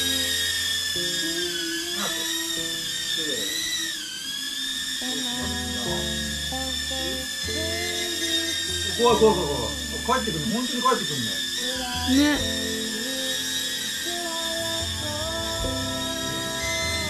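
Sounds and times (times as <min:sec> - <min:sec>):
toy drone propellers whining: 0:00.0 - 0:17.0
background music: 0:05.4 - 0:17.0.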